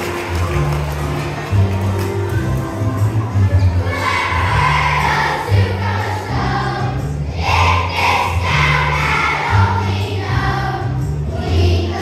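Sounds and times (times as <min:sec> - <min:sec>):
children's choir singing: 0:02.9 - 0:12.0.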